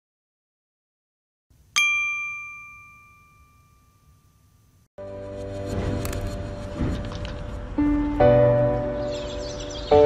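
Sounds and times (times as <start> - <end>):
bell-like ding: 1.8 - 4.8.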